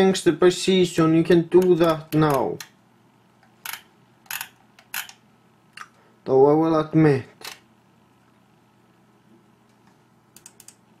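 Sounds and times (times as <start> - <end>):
mouse scroll wheel clicking: 10.4 - 10.8.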